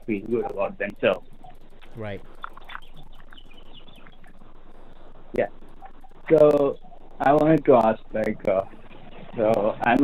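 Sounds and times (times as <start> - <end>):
telephone line hiss: 4.2 - 10.0.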